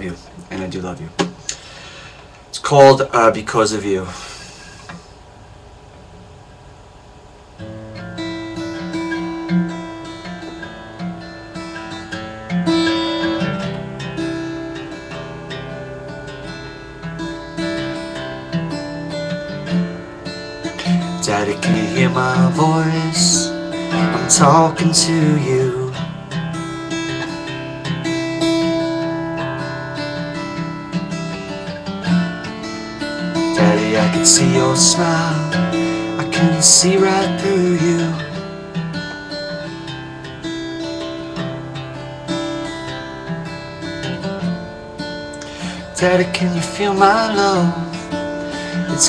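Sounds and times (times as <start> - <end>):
acoustic guitar strumming: 7.5 - 49.0.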